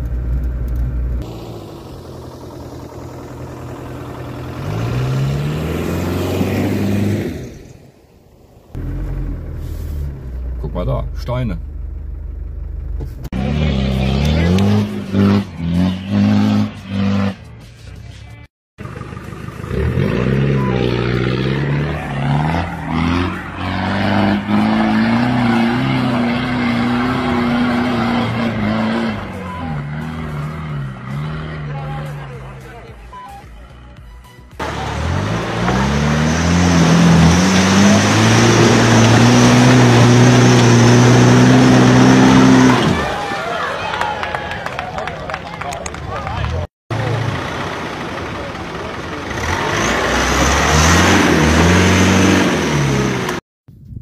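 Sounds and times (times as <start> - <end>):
off-road engines revving hard: 1.2 - 7.9, 13.3 - 33.0, 34.6 - 44.2, 45.6 - 53.4.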